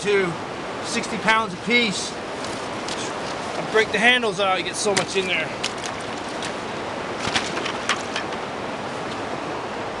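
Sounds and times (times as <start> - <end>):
river water rushing: 0.0 - 10.0.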